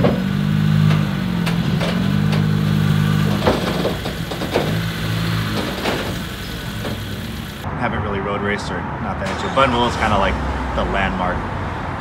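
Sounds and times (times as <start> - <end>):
car engine at low revs: 0.0 - 7.6.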